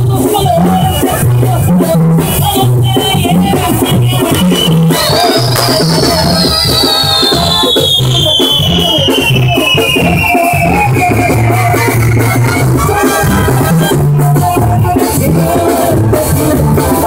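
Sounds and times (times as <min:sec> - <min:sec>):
music with stepping bass line: 0:00.0 - 0:17.0
firework whistle sliding down: 0:03.9 - 0:12.9
fireworks fizzing and crackling: 0:04.3 - 0:11.3.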